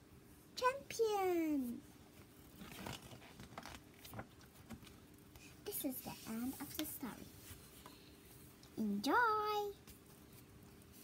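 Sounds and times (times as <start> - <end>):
book pages rustling: 2.2 - 7.9.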